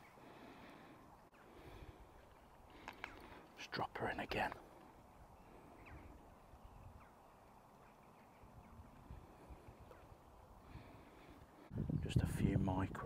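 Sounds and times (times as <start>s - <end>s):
faint bird chirps: 5.0s - 12.0s.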